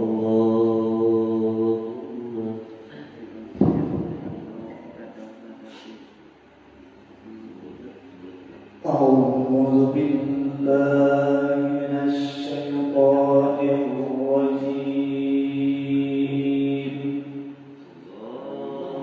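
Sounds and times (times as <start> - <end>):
man chanting melodically: 0.0 - 5.4, 7.2 - 19.0.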